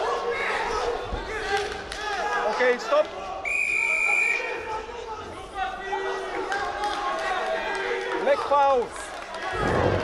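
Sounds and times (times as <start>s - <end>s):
coaches and crowd shouting: 0.0s - 10.0s
referee's whistle blast: 3.4s - 4.5s.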